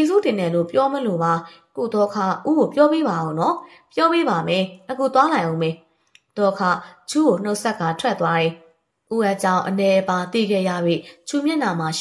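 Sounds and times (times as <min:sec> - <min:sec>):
woman narrating: 0:00.0 - 0:12.0.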